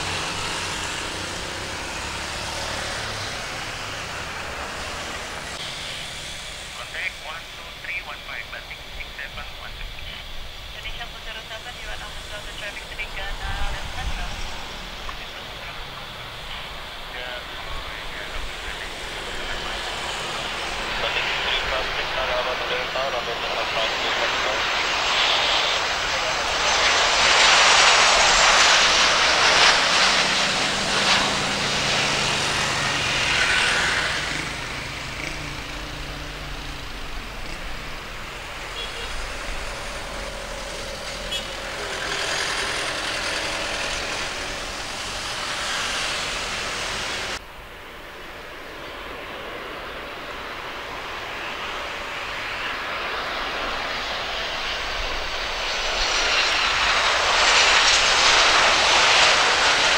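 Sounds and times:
jet engines of landing airliner: 0.0s - 59.9s.

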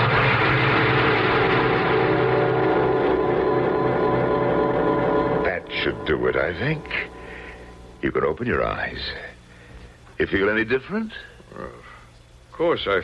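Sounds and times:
dense held chord: 0.0s - 10.0s
person speaking: 5.4s - 9.4s.

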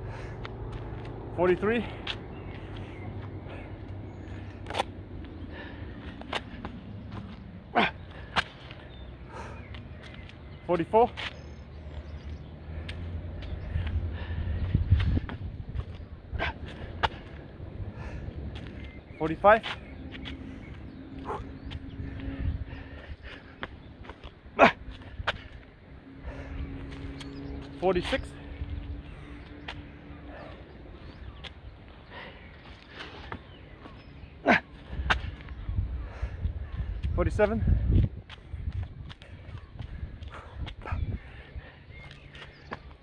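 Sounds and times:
man breathing hard: 0.0s - 10.2s, 12.6s - 15.6s, 16.2s - 19.1s, 20.2s - 23.9s, 24.7s - 27.4s, 28.4s - 37.1s, 37.7s - 42.8s.

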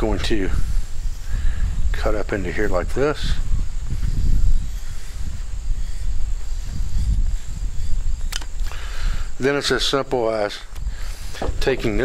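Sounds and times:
shears cutting thick leather: 3.8s - 8.8s
sharp clicks: 7.9s - 8.9s.

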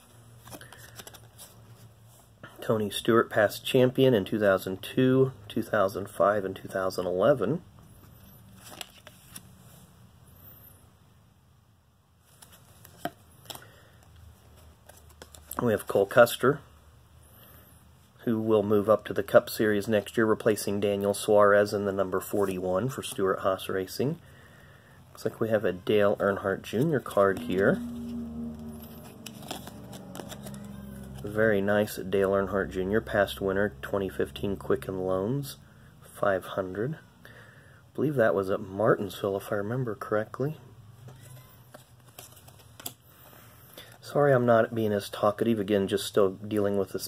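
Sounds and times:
low room hum: 0.0s - 47.0s
cards rustling: 0.3s - 1.9s, 8.5s - 9.6s, 12.2s - 16.1s, 26.0s - 34.7s, 41.0s - 44.0s.

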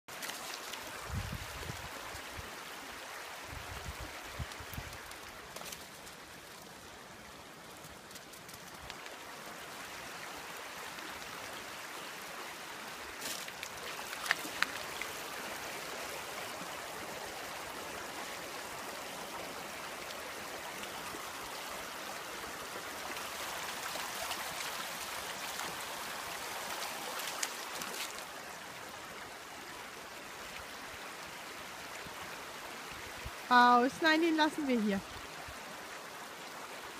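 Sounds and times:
stream rushing water: 0.1s - 36.9s.

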